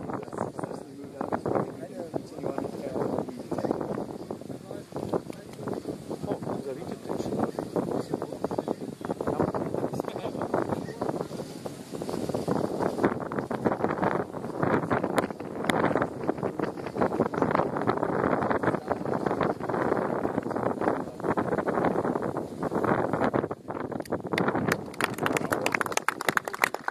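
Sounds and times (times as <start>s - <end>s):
wind buffeting microphone: 0.0s - 26.9s.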